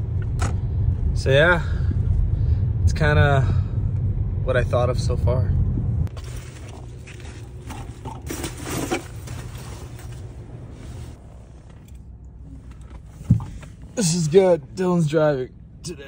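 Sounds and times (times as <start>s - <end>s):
low steady hum: 0.0s - 16.0s
rustling: 6.1s - 11.9s.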